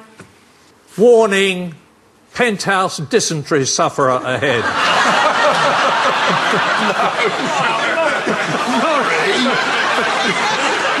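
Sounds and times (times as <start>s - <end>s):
audience laughing: 4.3s - 11.0s.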